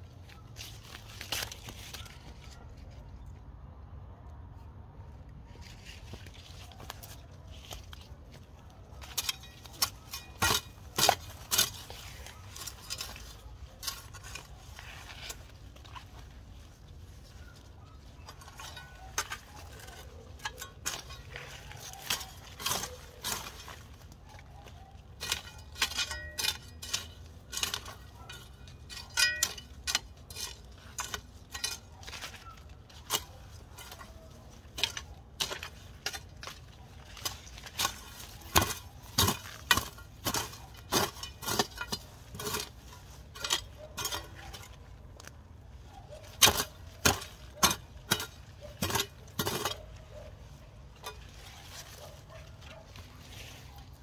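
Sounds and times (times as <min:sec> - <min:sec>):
metal hoe scraping dry soil: 0:00.0 - 0:03.3, 0:05.5 - 0:54.0.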